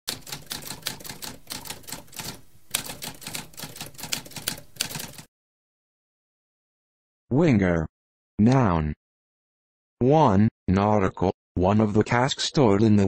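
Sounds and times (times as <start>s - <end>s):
typewriter keystrokes clacking: 0.1s - 5.3s.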